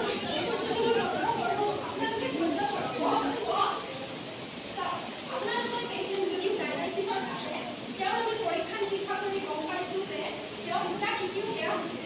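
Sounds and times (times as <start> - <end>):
chatter of several people: 0.0 - 12.0.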